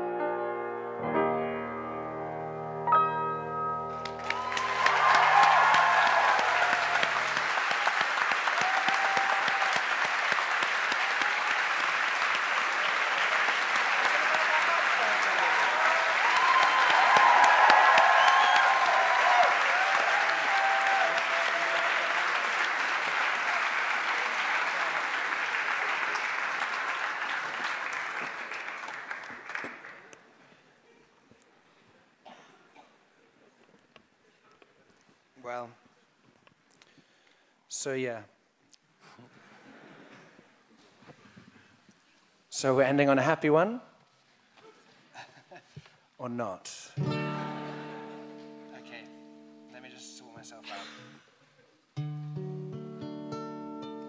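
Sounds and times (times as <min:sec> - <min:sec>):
audience applause: 0:04.0 - 0:30.6
audience cheers and whoops: 0:04.1 - 0:10.3, 0:10.9 - 0:11.9, 0:14.0 - 0:25.0.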